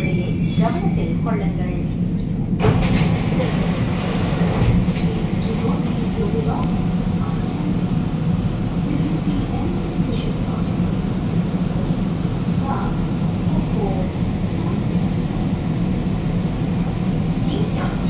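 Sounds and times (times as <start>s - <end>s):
metro train interior rumble: 0.0s - 18.0s.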